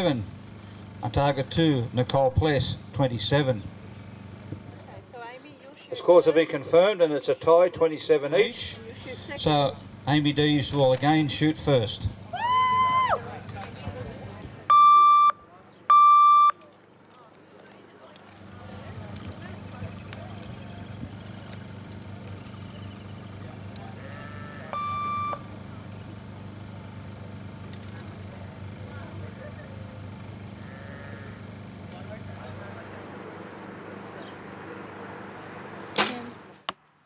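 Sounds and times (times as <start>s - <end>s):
steady low hum: 0.0s - 5.3s, 18.3s - 37.0s
electronic beep: 14.7s - 16.6s, 24.8s - 25.4s
bow string crack: 35.9s - 36.8s.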